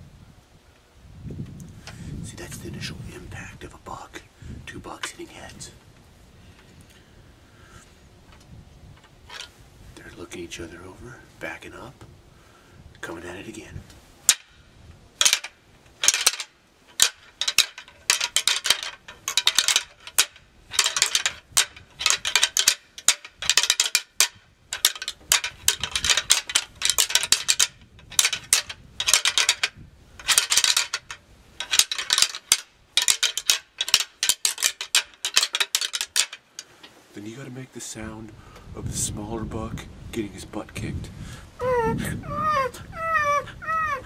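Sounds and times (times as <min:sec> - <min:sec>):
antlers clacking and grinding: 0:09.3 - 0:09.5, 0:14.3 - 0:14.6, 0:15.2 - 0:37.0.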